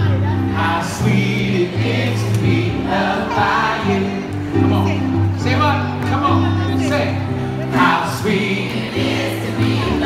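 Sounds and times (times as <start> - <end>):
electric keyboard chords: 0.0 - 10.0
voices singing together: 0.2 - 4.5, 7.6 - 10.0.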